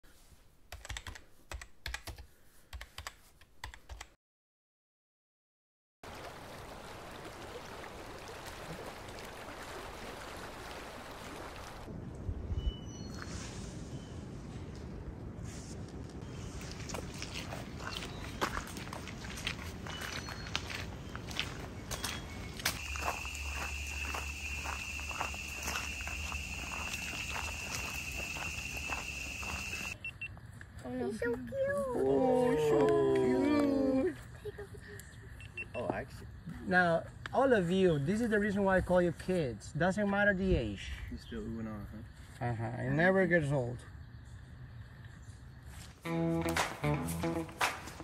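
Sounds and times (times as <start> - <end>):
laptop keyboard typing: 0.7 - 4.1
footsteps: 14.8 - 30.7, 45.7 - 48.0
outdoor background hiss: 22.6 - 48.0.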